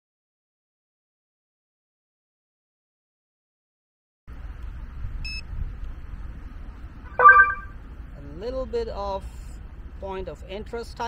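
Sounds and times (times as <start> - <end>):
short electronic beep: 7.1 - 7.8.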